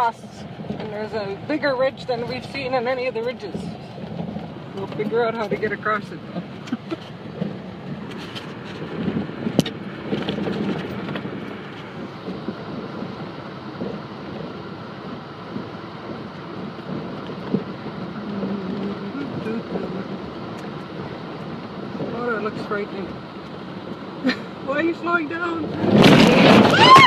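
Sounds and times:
vehicle driving over ice: 0.0s - 27.0s.

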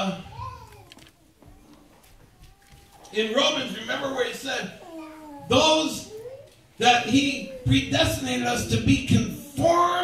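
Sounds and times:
man's amplified voice speaking: 0.0s - 0.4s, 3.1s - 4.8s, 5.4s - 6.2s, 6.8s - 10.0s.

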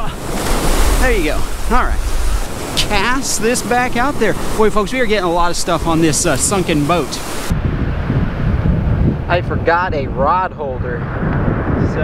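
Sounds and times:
ocean surf washing: 0.0s - 12.0s
wind buffeting microphone: 0.0s - 12.0s
bright hiss: 0.1s - 7.5s.

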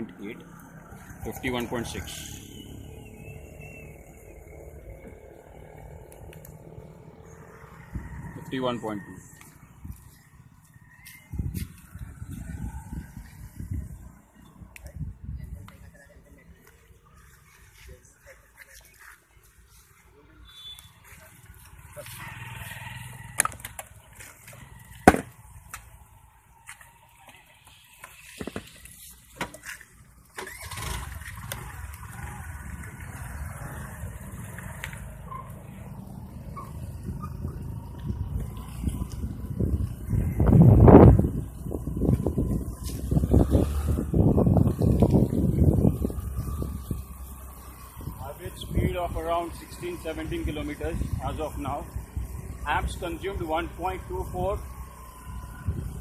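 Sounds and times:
bicycle road and wind noise: 0.0s - 56.0s.

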